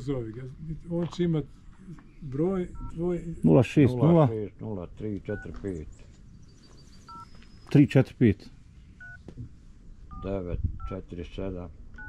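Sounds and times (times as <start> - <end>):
phone keypad dial beep: 7.1 - 7.3, 9.0 - 9.2.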